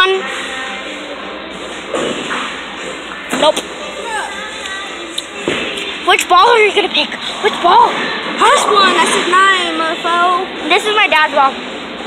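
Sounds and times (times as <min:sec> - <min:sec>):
busy bowling alley din: 0:00.0 - 0:12.0.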